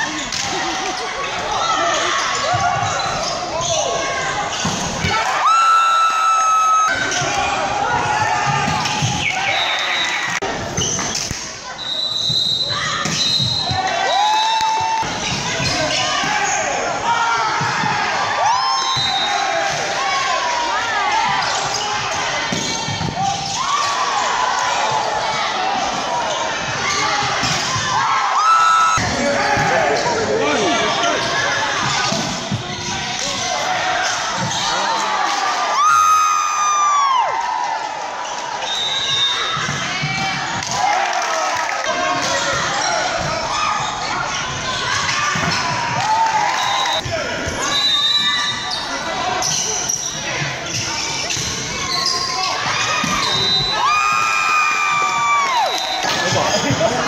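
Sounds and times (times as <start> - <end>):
players and spectators shouting: 0.0 - 10.9, 12.6 - 57.0.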